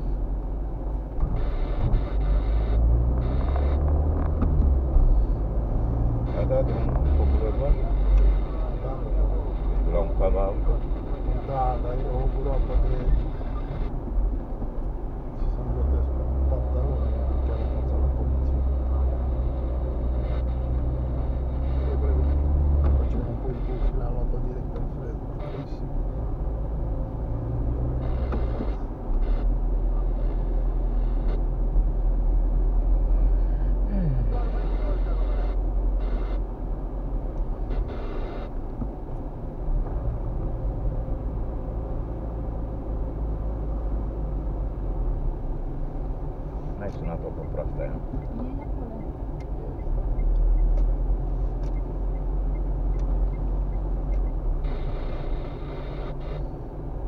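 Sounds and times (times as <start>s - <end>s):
car engine and road rumble: 0.0s - 57.0s.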